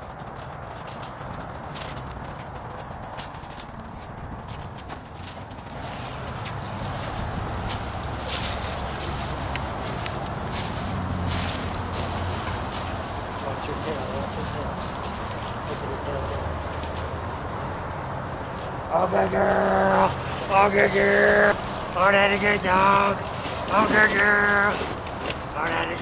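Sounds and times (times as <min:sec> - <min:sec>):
dry brush crackling and rustling: 0:00.0 - 0:26.0
twigs snapping: 0:07.7 - 0:13.5, 0:20.1 - 0:22.0.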